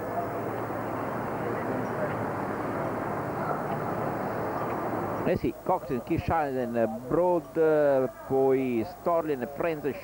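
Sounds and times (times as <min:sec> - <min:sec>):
outdoor background rush: 0:00.0 - 0:10.0.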